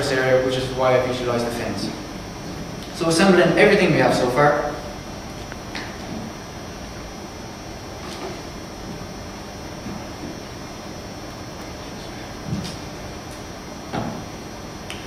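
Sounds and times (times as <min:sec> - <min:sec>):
steady room hiss: 0:00.0 - 0:15.0.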